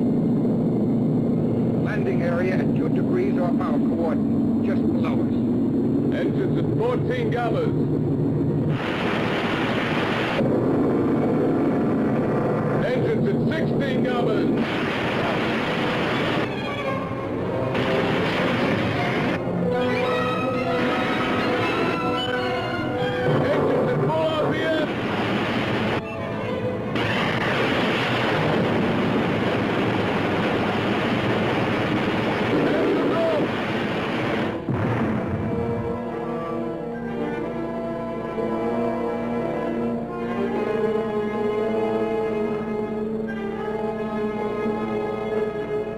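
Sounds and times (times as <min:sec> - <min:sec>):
film soundtrack music: 0:00.0 - 0:45.9
rumbling spacecraft noise: 0:00.0 - 0:45.9.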